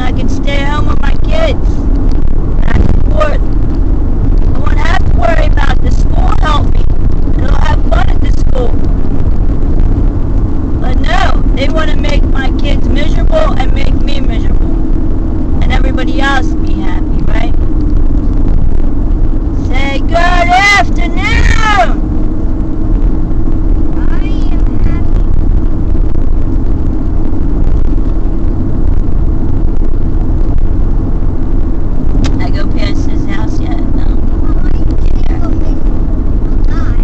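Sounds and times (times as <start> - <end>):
car road and engine rumble: 0.0 - 37.0.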